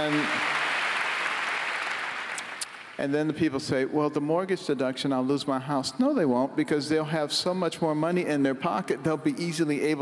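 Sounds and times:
large audience applauding: 0.0 - 3.0.

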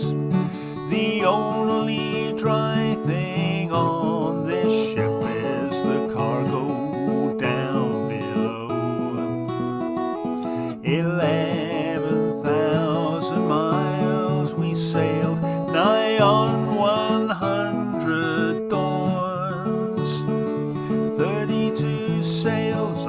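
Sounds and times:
man singing: 0.0 - 9.8, 10.4 - 23.0
acoustic guitar strumming: 0.0 - 23.0.

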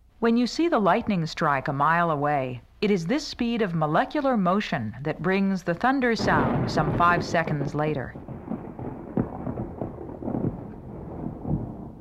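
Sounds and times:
sharp thunder cracks: 6.2 - 12.0
thunder rumbling: 6.2 - 12.0.

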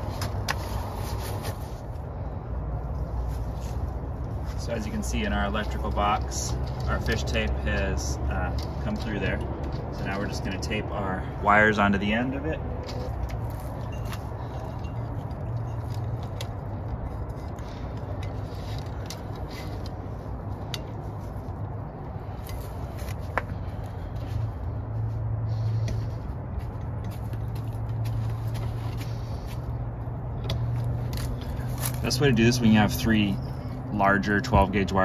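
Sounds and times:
hands handling wire and tape: 0.0 - 2.1, 2.9 - 10.8, 12.0 - 29.6, 30.4 - 32.7.

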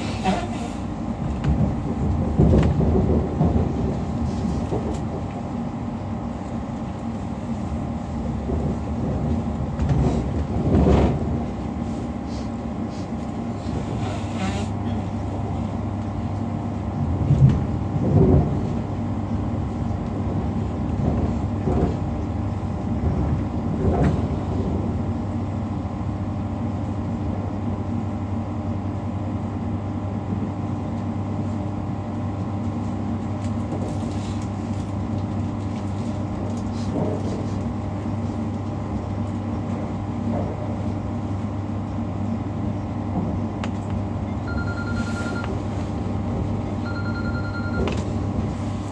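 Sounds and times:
train interior hum: 0.0 - 48.9.

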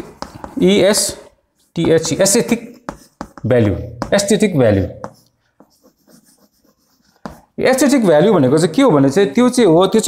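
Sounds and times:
chalk scratching on blackboard: 0.0 - 7.9.

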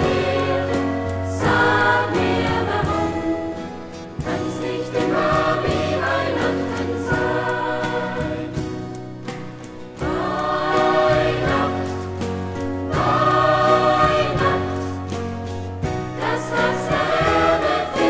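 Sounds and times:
choir singing: 0.0 - 8.9, 10.0 - 15.3, 16.1 - 18.0.

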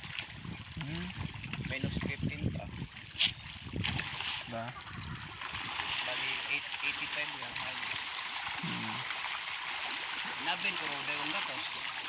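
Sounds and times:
fish splashing at water surface: 2.7 - 12.0.

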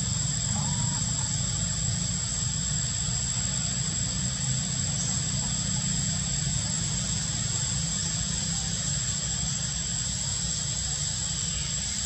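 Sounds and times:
thin high-pitched whine: 0.0 - 12.0.

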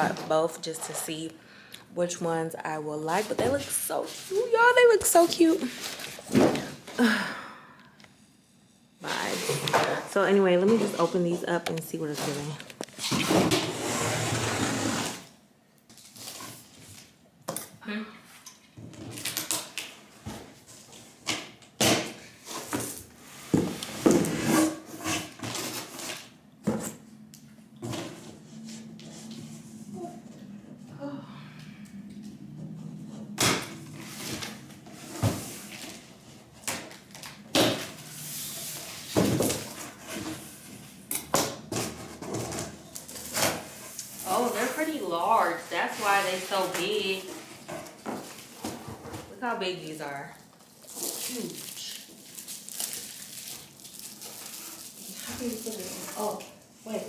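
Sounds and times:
packaging rustling: 50.6 - 56.5.

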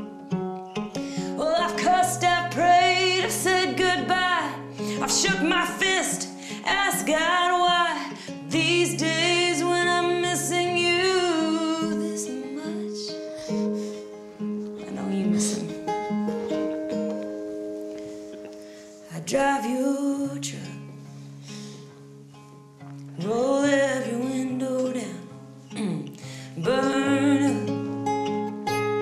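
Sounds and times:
acoustic guitar: 0.0 - 29.0
woman singing: 1.2 - 14.1, 14.8 - 16.0, 19.0 - 21.1, 23.1 - 28.2.

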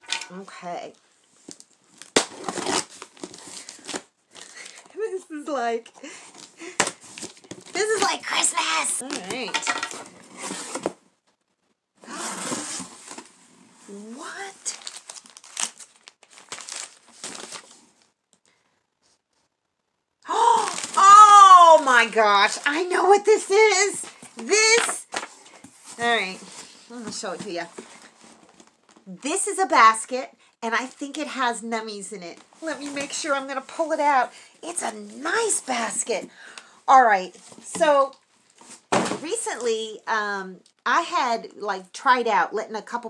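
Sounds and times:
packaging tearing and crinkling: 1.5 - 4.8, 14.6 - 18.1, 20.5 - 21.3
cardboard box rustling: 9.0 - 11.0, 14.6 - 17.8
person exclaiming ohh: 20.3 - 21.9.

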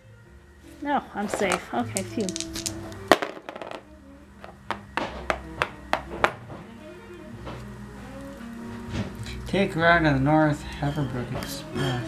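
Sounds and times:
faint background music: 0.0 - 12.0
game token tapping on board: 1.3 - 3.8, 4.4 - 6.4.

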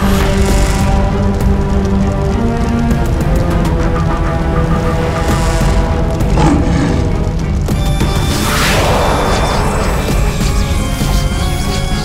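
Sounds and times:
dramatic orchestral music: 0.0 - 12.0
heavy low drone: 4.5 - 10.9
rushing noise effect: 6.1 - 10.8.

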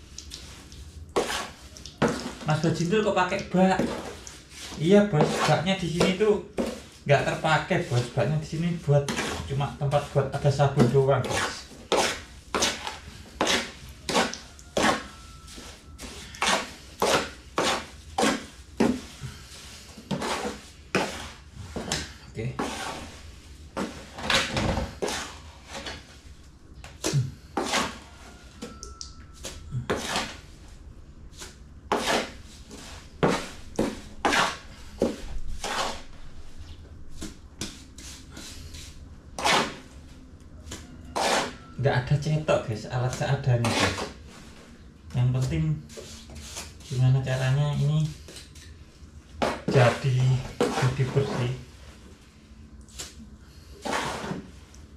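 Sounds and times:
wet cement scraping in plastic basin: 0.3 - 23.2, 23.8 - 26.0, 27.0 - 28.2, 29.8 - 30.4, 31.9 - 36.2, 39.4 - 39.8, 40.8 - 41.6, 43.0 - 44.6, 49.4 - 51.8, 53.0 - 54.7.

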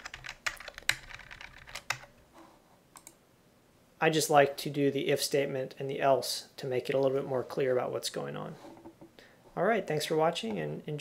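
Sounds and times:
computer keyboard keystrokes: 0.0 - 2.1, 3.0 - 3.2.

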